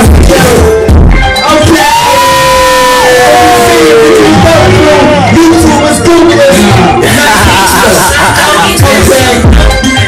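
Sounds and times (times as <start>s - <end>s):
live hip hop music: 0.0s - 10.0s.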